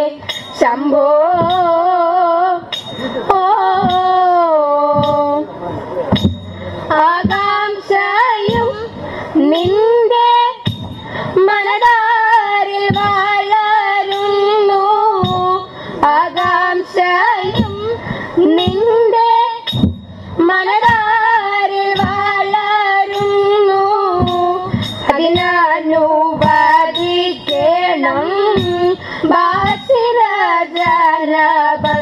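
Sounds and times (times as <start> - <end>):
young women singing: 0.0 - 5.5, 6.8 - 32.0
short sharp beats: 5.0 - 7.6, 19.7 - 22.4.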